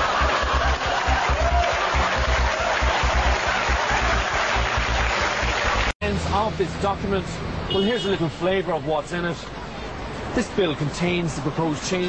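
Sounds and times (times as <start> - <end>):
audience laughing: 0.0 - 4.9
audience applauding: 0.0 - 5.9.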